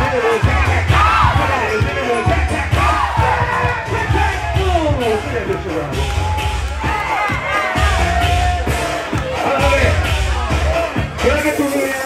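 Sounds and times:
crowd shouting and cheering: 0:00.0 - 0:12.0
loud dance music: 0:00.0 - 0:12.0.

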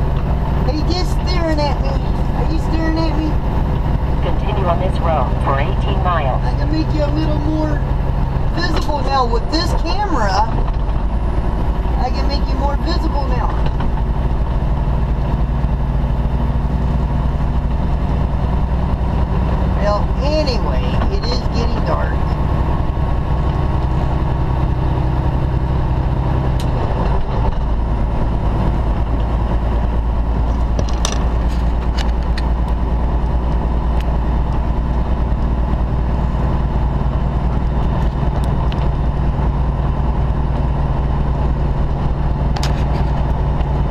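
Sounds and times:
diesel truck engine drone: 0:00.0 - 0:43.9
road noise: 0:00.0 - 0:43.9.

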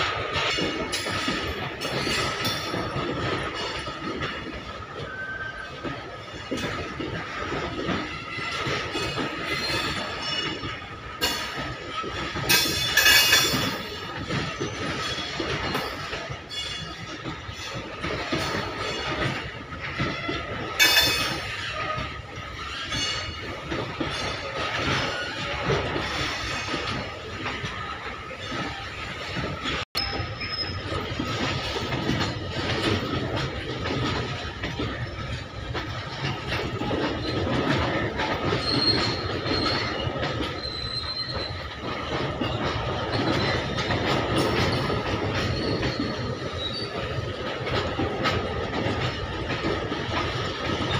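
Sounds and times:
train wheels clattering on rail joints: 0:00.0 - 0:50.9
wheel squealing on rail: 0:00.0 - 0:50.9
high wheel squeal: 0:30.0 - 0:30.9.

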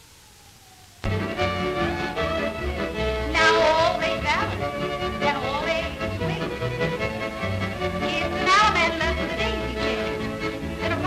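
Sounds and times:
square dance music: 0:01.0 - 0:11.0.

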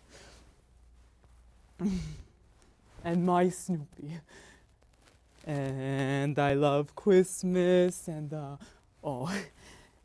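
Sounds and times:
man sighing: 0:01.8 - 0:02.4.

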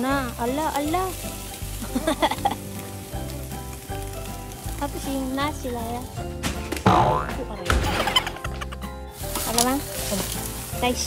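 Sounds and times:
meat sizzling on a grill: 0:00.0 - 0:07.2, 0:08.0 - 0:11.0
background music with bass: 0:00.0 - 0:11.0.

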